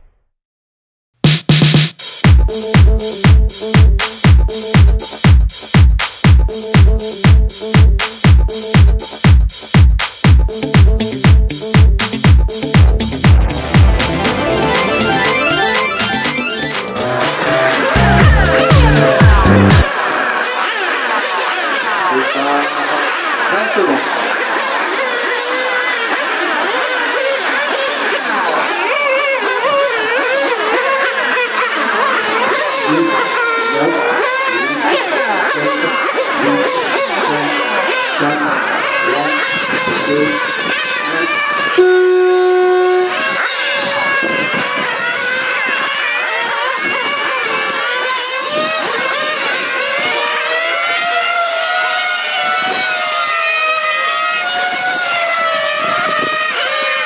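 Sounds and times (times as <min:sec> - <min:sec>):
rc car engines revving: 0:10.5 - 0:57.0.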